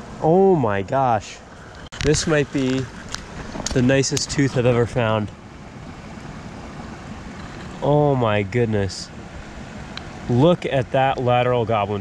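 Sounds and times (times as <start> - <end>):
man talking: 0.2 - 1.4, 2.0 - 2.9, 3.7 - 5.4, 7.8 - 9.1, 10.3 - 12.0
creek running over gravel: 0.8 - 5.3.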